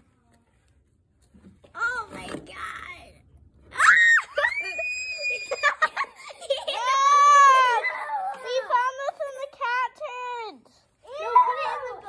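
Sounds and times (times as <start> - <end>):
children screaming: 3.7 - 8.4.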